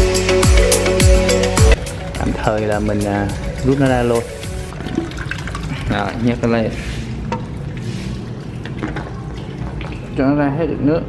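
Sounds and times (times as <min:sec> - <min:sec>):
water running through hose: 0:02.4 - 0:10.6.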